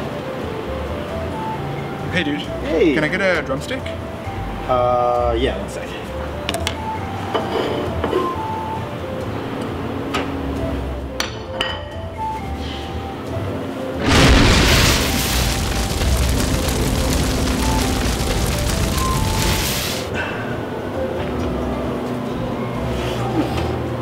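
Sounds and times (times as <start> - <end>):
background music: 0.0 - 24.0
rush of flame: 14.0 - 20.1.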